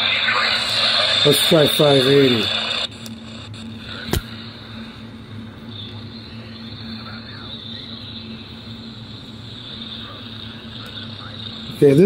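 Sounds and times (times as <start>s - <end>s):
faint radio station: 0.0s - 12.0s
radio static hiss and hum: 0.0s - 12.0s
sharp click: 4.1s - 4.3s.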